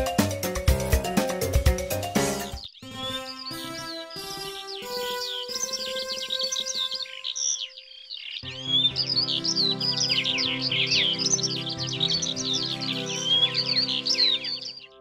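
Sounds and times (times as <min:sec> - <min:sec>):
background music: 0:00.0 - 0:15.0
birds chirping and twittering: 0:02.1 - 0:15.0.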